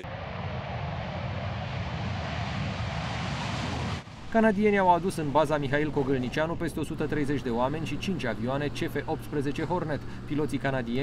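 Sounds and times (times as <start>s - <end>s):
fighter jet taking off: 0.0s - 8.3s.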